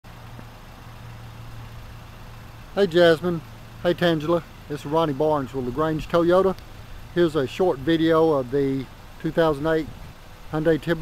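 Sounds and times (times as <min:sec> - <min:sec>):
steady low hum: 0:00.1 - 0:11.0.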